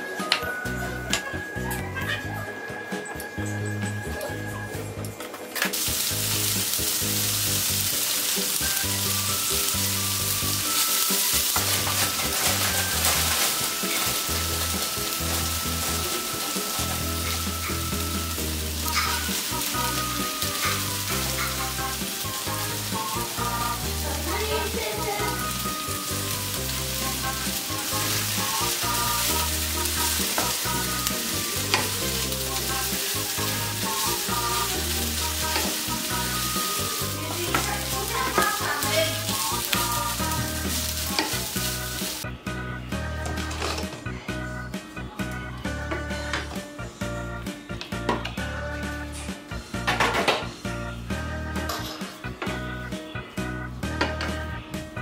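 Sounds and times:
background music: 0.0 - 55.0
patties sizzling in a pan: 5.7 - 42.2.

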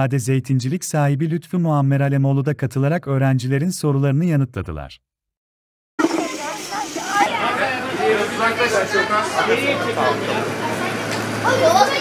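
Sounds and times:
children chattering: 6.0 - 12.0.

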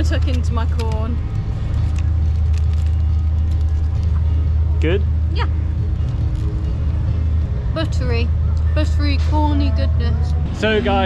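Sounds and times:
vehicle engine rumbling: 0.0 - 11.0.

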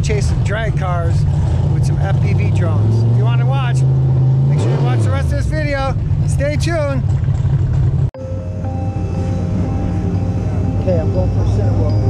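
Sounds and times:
steady low rumble: 5.3 - 12.0
background music with held notes: 8.2 - 12.0.

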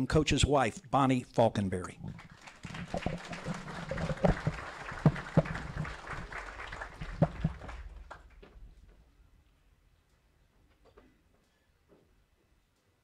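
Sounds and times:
audience applauding: 2.0 - 8.5
loud single claps: 2.4 - 8.5.

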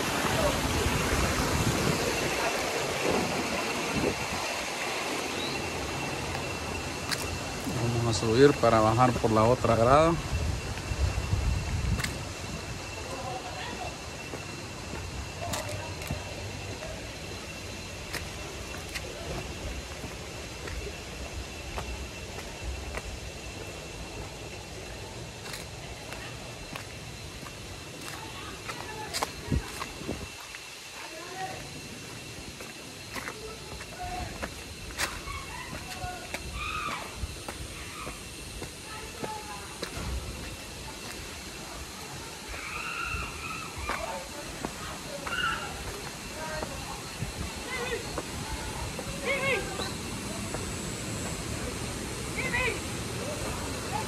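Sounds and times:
wind buffeting microphone: 0.0 - 4.8, 10.2 - 13.0
river water rushing: 0.0 - 7.8
distant voices: 0.0 - 54.0.

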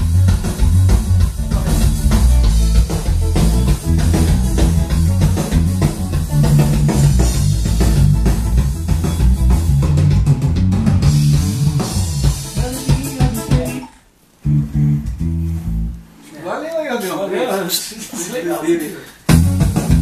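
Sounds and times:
backing track with drums: 0.0 - 16.1, 17.0 - 20.0
electric bass guitar: 0.0 - 16.2, 19.3 - 20.0.

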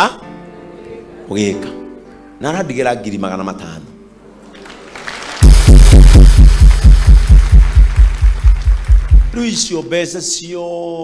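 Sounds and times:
deep bass pulses sliding down: 5.4 - 9.4.

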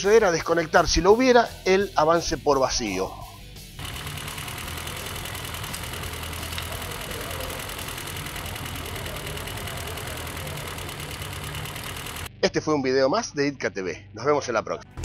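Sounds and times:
engine idling: 3.8 - 12.3.

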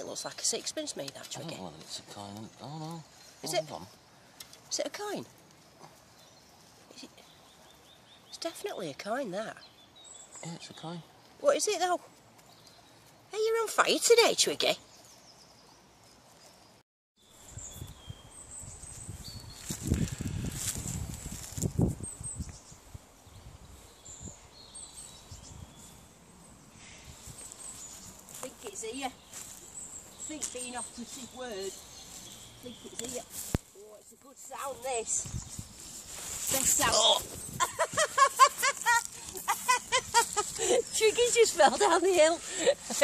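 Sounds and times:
birds chirping and whistling: 17.3 - 22.8, 23.4 - 33.6, 34.7 - 43.0
rustling: 18.8 - 22.0, 27.2 - 43.0
woman laughing: 37.4 - 43.0.

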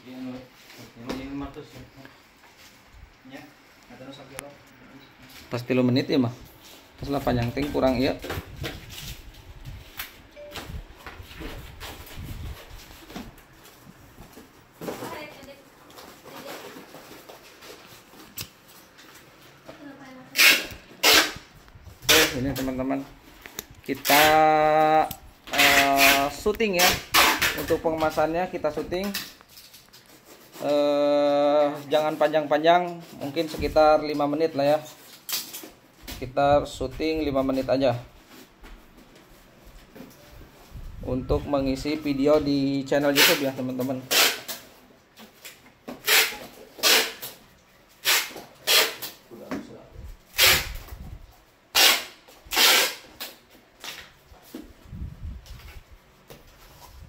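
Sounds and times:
cardboard and paper rustling: 11.2 - 20.2.

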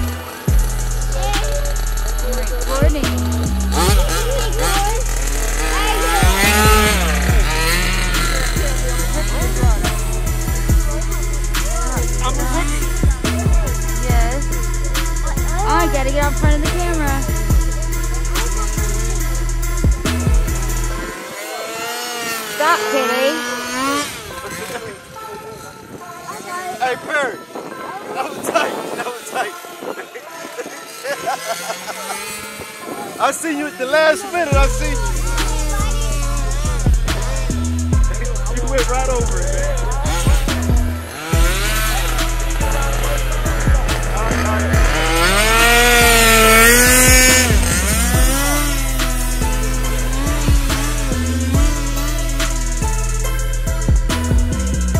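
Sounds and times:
music with drum beat: 0.0 - 21.1, 34.5 - 54.9
rc car motors whining: 0.0 - 54.9.

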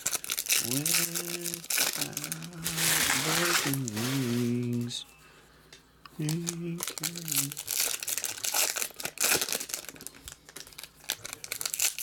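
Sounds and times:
foil wrapper crinkling and tearing: 0.0 - 4.9, 6.2 - 12.0.

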